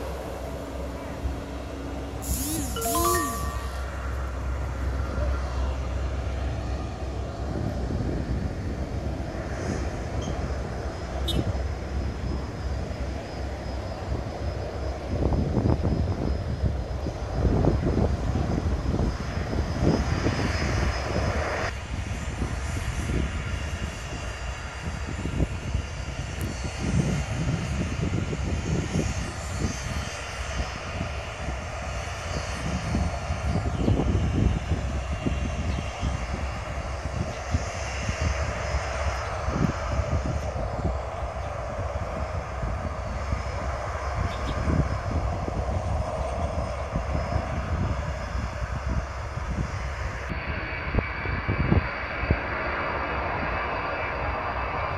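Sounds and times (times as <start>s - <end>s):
jet engines running: 0.0s - 54.9s.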